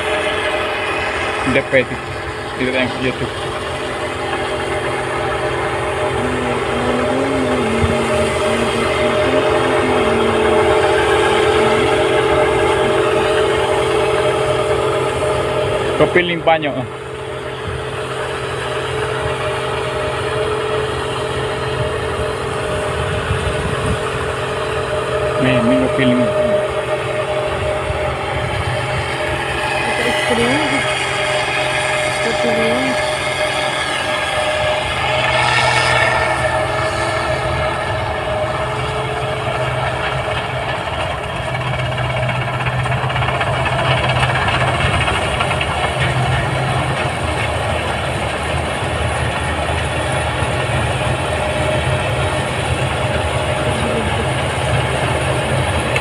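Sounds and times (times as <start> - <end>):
combine harvester humming: 0.0 - 56.0.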